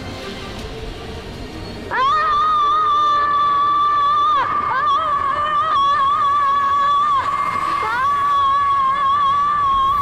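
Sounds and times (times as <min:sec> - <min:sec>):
background music: 0:00.0 - 0:10.0
boy screaming: 0:01.9 - 0:10.0.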